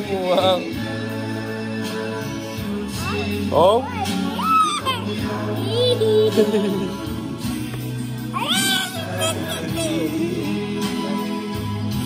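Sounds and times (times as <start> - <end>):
background music: 0.0 - 12.0
baby squealing: 4.3 - 6.4, 8.3 - 10.2.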